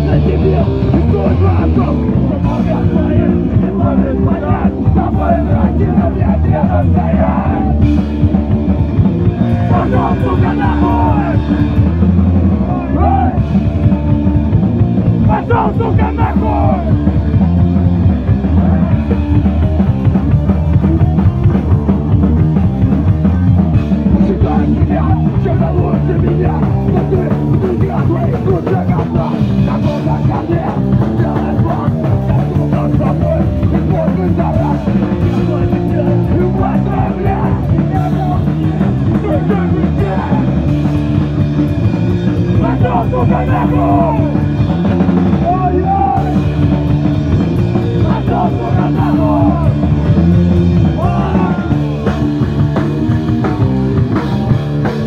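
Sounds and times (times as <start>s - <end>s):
punk rock band playing: 0.0s - 55.0s
steady drum beat: 0.0s - 55.0s.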